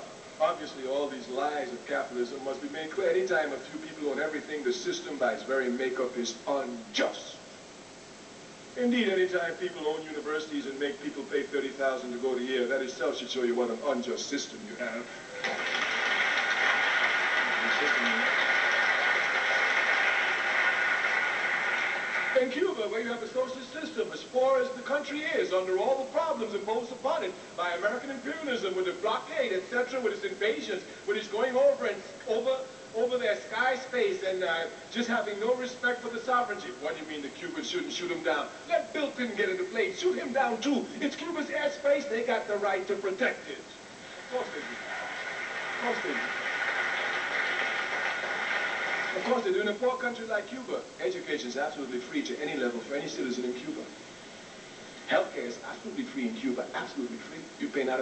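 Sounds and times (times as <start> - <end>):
man speaking: 0.0 - 7.5, 8.8 - 15.6, 22.4 - 44.8, 45.8 - 46.3, 49.1 - 54.0, 55.0 - 58.0
steady hiss: 0.0 - 58.0
audience clapping: 15.4 - 22.5, 44.2 - 49.5.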